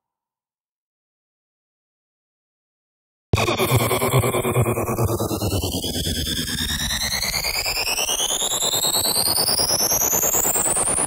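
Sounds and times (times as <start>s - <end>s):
fluttering noise bed: 3.4s - 11.0s.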